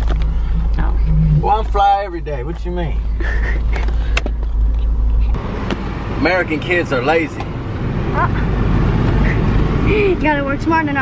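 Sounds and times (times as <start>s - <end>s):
car cabin low rumble: 0.0s - 11.0s.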